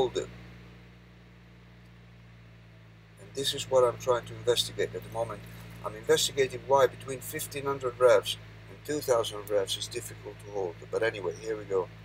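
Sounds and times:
diesel engine humming: 0:00.0 - 0:12.0.

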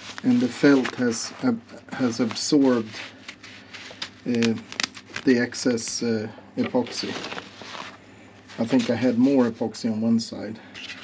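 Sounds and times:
stiff felt crackling: 0:00.0 - 0:09.2.

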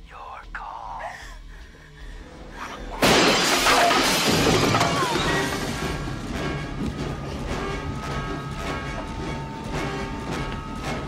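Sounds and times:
broken glass jangling: 0:03.0 - 0:05.8
glass door crashing and shattering: 0:03.0 - 0:06.1.

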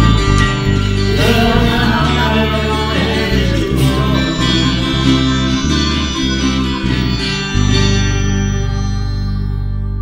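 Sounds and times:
acoustic guitars strumming chords: 0:00.0 - 0:10.0.

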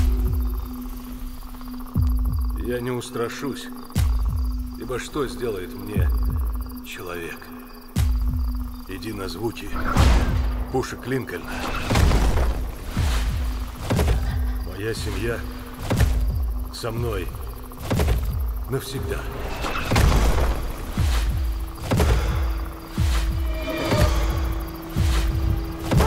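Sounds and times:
crickets chirping: 0:00.0 - 0:26.0.

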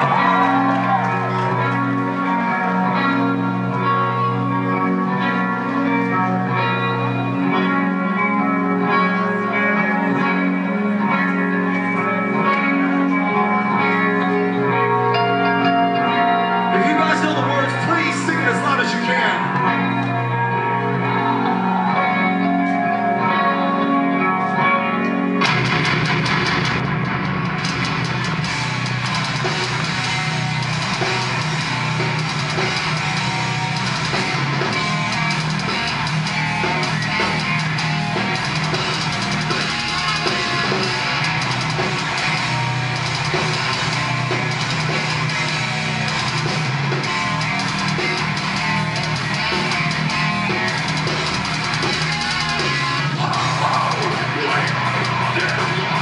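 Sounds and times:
clean electric guitar line: 0:00.0 - 0:56.0
metal band playing: 0:00.0 - 0:56.0.

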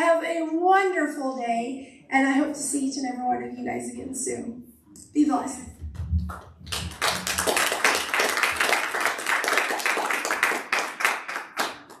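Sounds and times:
congregation applauding: 0:06.2 - 0:12.0.

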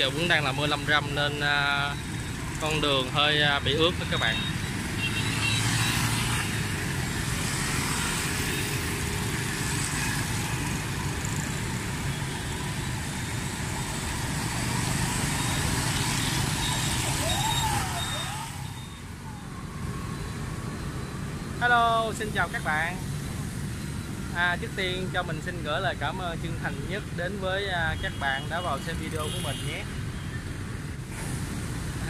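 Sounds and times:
motorbikes and cars passing: 0:00.0 - 0:32.0
tyres hissing on wet road: 0:31.1 - 0:32.0.

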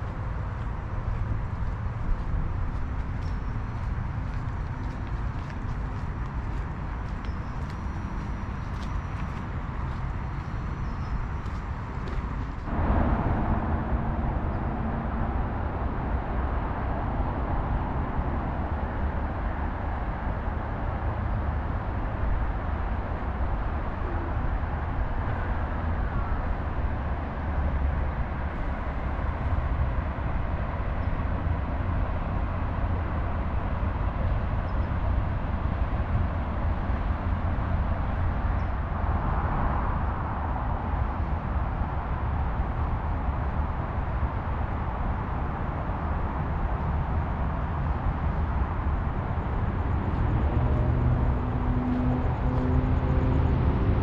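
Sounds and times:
low outdoor rumble: 0:00.0 - 0:54.0.

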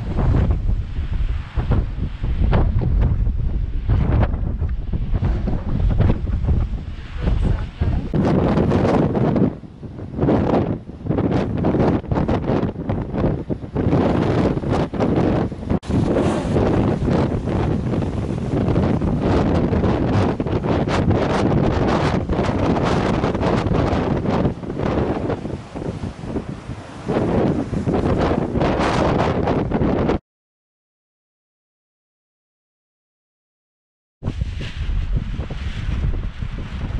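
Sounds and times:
sea surging against rocky shore: 0:00.0 - 0:30.2
wind buffeting microphone: 0:00.0 - 0:30.2, 0:34.2 - 0:36.9.

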